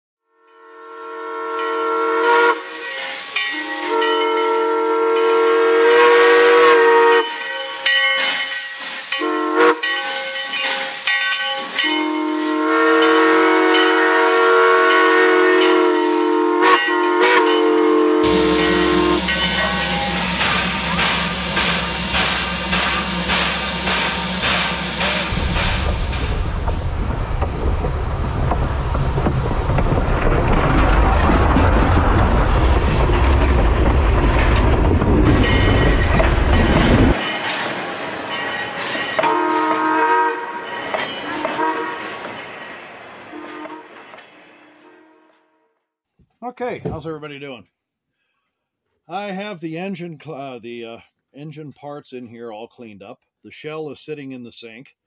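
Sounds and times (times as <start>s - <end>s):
steam locomotive chime whistle: 0.3s - 26.0s, 38.3s - 44.0s
steam hiss: 2.2s - 4.0s, 5.6s - 14.2s, 18.1s - 26.8s
steam locomotive chuffing: 2.2s - 43.8s.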